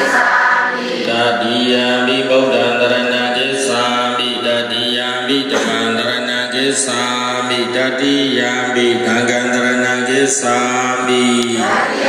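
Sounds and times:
voices chanting a prayer: 0.0 - 12.0.

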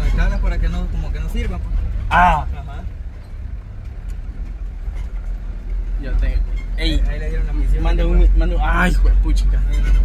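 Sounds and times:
truck engine rumbling inside cab: 0.0 - 10.0.

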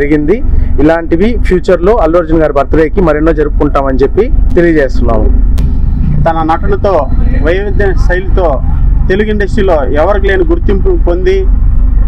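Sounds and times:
man speaking into a microphone: 0.0 - 5.4, 6.3 - 11.5
steady low rumble: 0.0 - 12.0.

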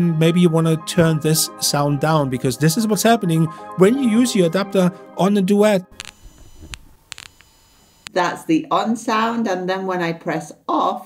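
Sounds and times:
high-pitched electrical whine: 5.9 - 8.1
sharp clicks and pops: 5.9 - 8.2.

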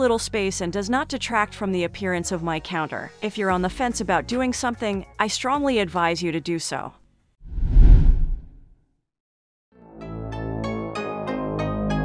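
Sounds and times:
editing whoosh: 7.5 - 8.6.

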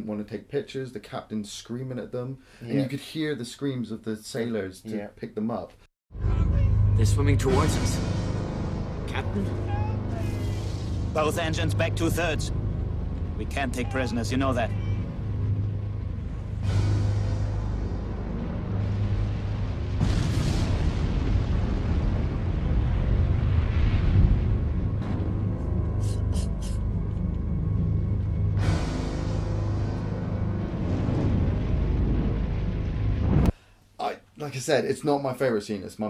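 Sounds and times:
ominous film score music: 6.2 - 22.9, 23.8 - 33.5
rush of noise: 6.2 - 33.6
steady low rumble: 6.2 - 33.6.

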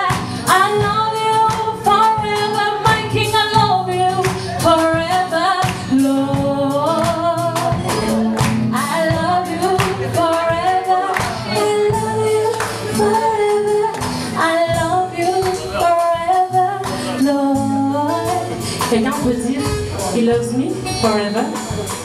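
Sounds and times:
woman singing gospel: 0.0 - 21.6
band playing steady beat: 0.0 - 22.0.

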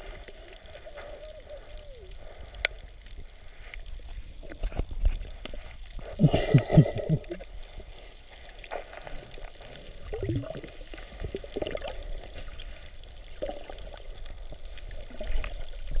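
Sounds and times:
bubbly bursts: 10.0 - 12.2.

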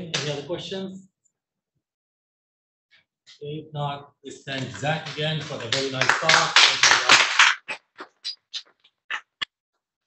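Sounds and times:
audience clapping: 4.5 - 8.3.

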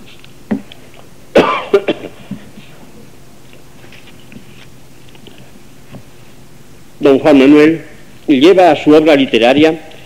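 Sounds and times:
person coughing: 1.3 - 2.4
person clearing throat: 1.3 - 2.5.

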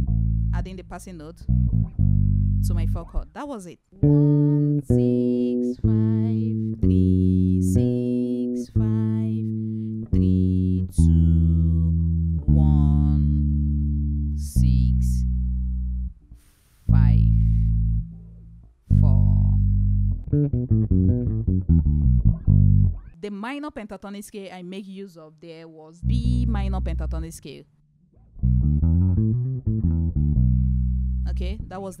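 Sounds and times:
electric bass guitar solo: 0.0 - 3.2, 4.0 - 16.2, 16.9 - 23.2, 26.0 - 27.4, 28.2 - 32.0.

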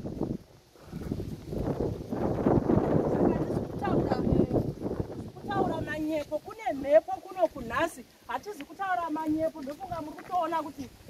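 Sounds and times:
footsteps on sandy ground: 0.0 - 11.0
wind rumbling on microphone: 0.0 - 11.0.

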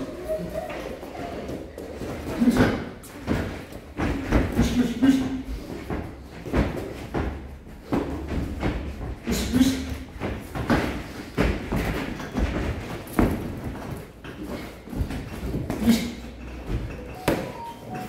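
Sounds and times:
short breaths and grunts: 4.5 - 6.5, 9.1 - 10.3, 14.2 - 16.9.

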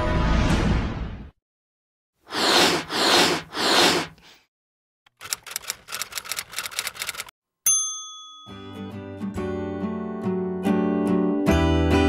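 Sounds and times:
typewriter keys clacking: 5.1 - 7.3
bell ding: 7.6 - 9.0.

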